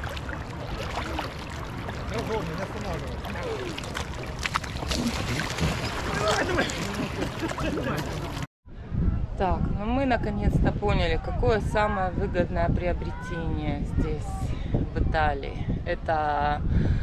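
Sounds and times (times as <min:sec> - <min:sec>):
shallow sea water washing: 0:00.0 - 0:08.5.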